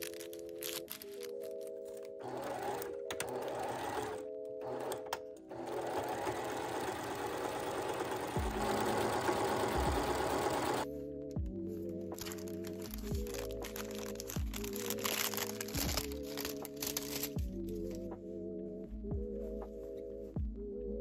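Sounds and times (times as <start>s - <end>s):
sewing machine stitching: 2.2s - 10.8s.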